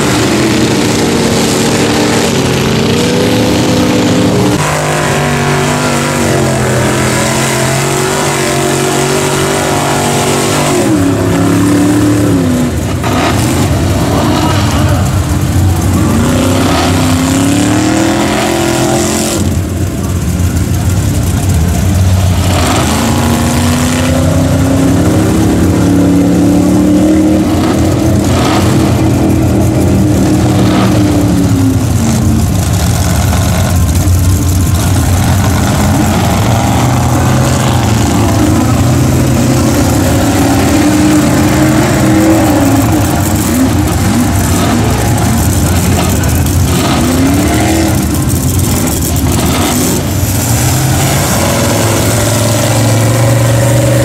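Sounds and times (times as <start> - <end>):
truck engine revving: 0.0 - 54.0.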